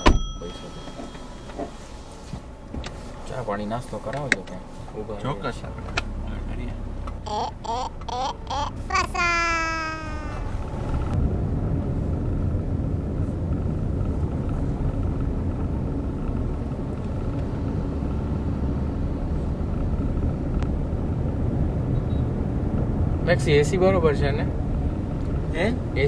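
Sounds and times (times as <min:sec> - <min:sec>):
car engine and road noise: 0:00.0 - 0:26.0.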